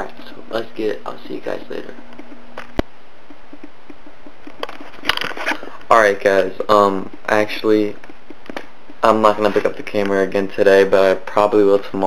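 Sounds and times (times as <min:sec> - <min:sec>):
camera handling noise: 0:04.4 - 0:05.7.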